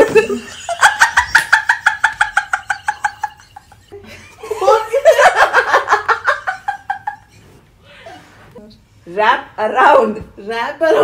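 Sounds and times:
women laughing hard: 0.0 - 7.5.

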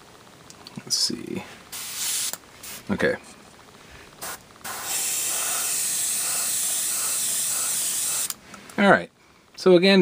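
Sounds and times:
airbrush air puff: 1.7 - 2.8, 4.2 - 8.4
airbrush spraying hiss: 1.7 - 2.9, 4.2 - 8.4.

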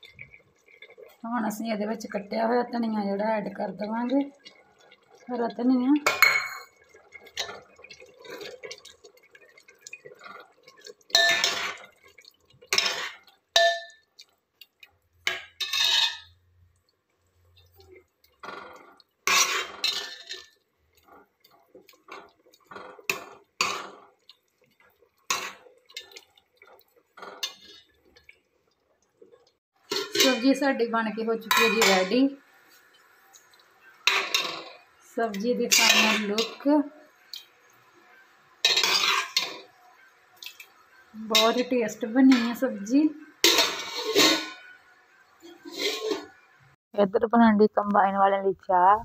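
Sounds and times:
ladle scraping steel pot: 6.0 - 13.9, 15.3 - 16.4, 17.6 - 21.2, 27.2 - 27.9, 29.9 - 30.8, 31.4 - 32.2, 33.8 - 36.7, 38.1 - 42.7, 43.3 - 46.5.

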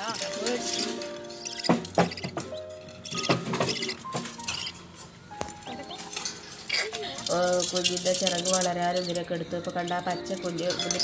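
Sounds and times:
lovebirds chirping and chattering: 0.0 - 11.0.

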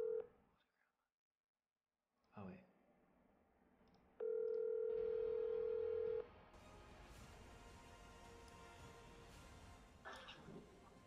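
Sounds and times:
telephone ringback tone: 0.0 - 0.2, 4.2 - 6.2.

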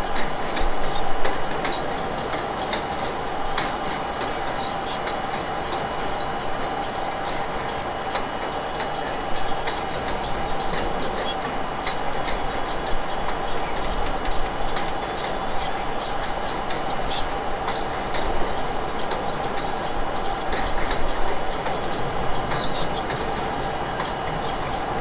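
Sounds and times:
subway train rumble: 0.0 - 25.0
wheels clicking over rails: 0.0 - 25.0.

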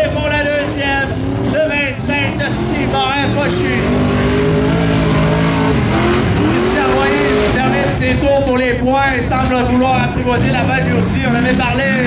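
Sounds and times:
race car engine revving: 0.0 - 12.0.

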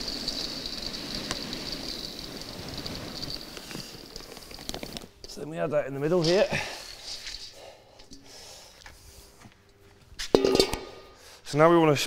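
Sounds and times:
dry hulls pouring: 0.0 - 5.0
sharp metallic clatter: 0.0 - 5.0.

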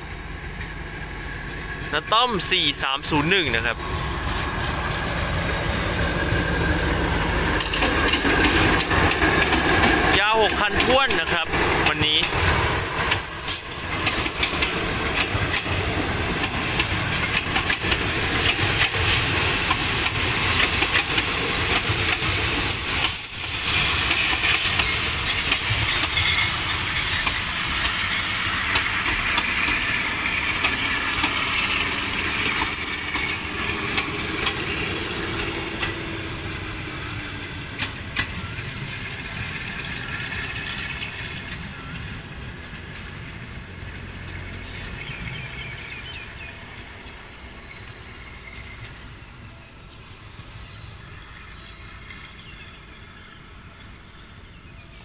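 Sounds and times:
train rolling on rails: 0.0 - 55.0.

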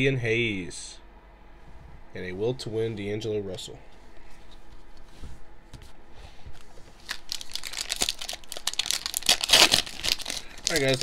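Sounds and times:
foil wrapper crinkling and tearing: 7.0 - 11.0.

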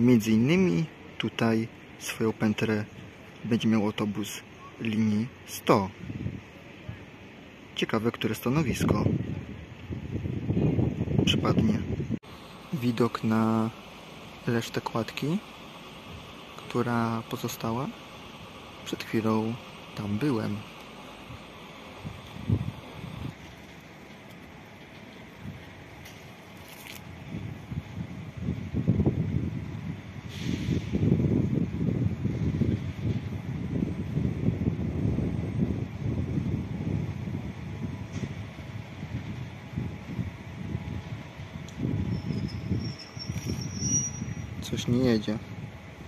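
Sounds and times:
steady outdoor background: 0.0 - 46.0
wind buffeting microphone: 6.0 - 7.0, 8.7 - 12.4, 19.6 - 23.6, 27.0 - 46.0.

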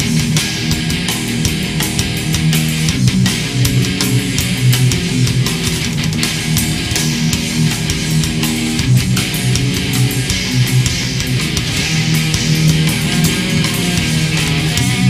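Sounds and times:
distorted electric guitars riffing: 0.0 - 15.0
fast drums and cymbals: 0.0 - 15.0.

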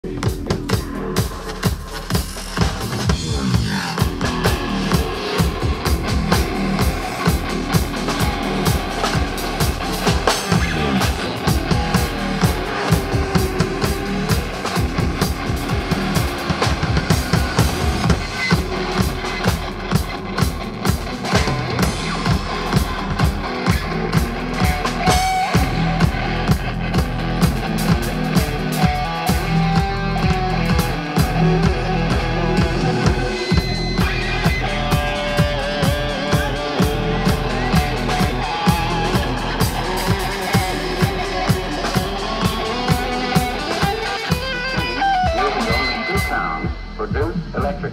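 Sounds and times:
drum kit beat: 0.0 - 47.9
electric guitar: 0.0 - 47.9.

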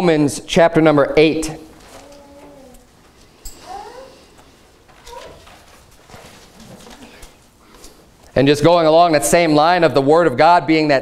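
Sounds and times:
pages being turned: 1.7 - 8.4.

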